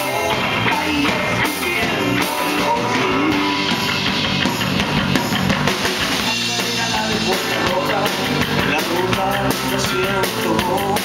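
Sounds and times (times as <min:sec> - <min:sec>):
drum kit with cymbals: 0:00.0 - 0:11.0
electric guitar: 0:00.0 - 0:11.0.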